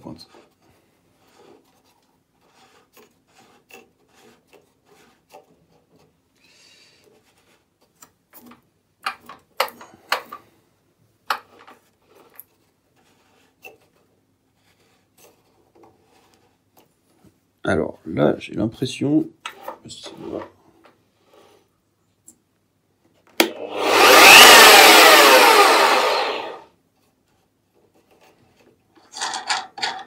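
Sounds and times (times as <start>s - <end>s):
metal scraping on metal and wood: 0.0s - 10.5s, 11.3s - 18.0s, 19.4s - 21.7s, 25.2s - 30.0s.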